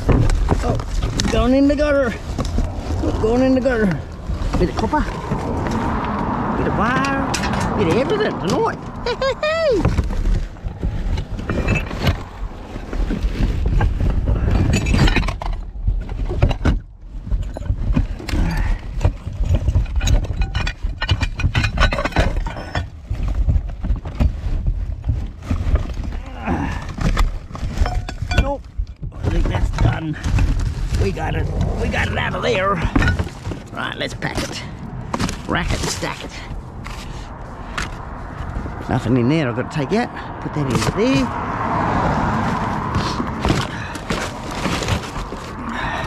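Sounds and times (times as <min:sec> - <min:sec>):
heavy low rumble: 0:00.0 - 0:21.6, 0:28.8 - 0:46.0
knocks of items shifted: 0:00.0 - 0:39.0, 0:40.7 - 0:46.0
rubbish rustling in a bin: 0:43.0 - 0:46.0.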